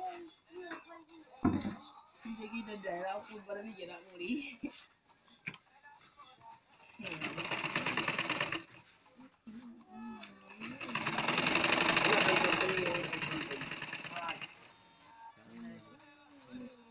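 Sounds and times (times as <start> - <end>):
sewing machine clatter: 6.9 - 8.8, 10.5 - 14.7
people talking: 12.1 - 14.5.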